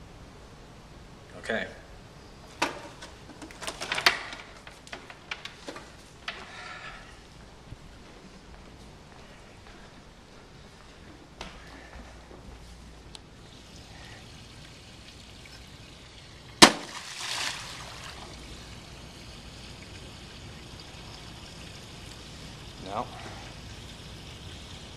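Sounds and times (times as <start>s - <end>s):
water splashing: 13.5s - 24.9s
object smacking water: 16.6s - 18.3s.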